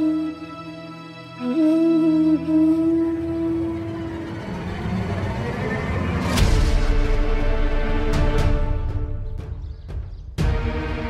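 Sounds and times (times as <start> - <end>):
low dark swell: 2.6 - 8.1.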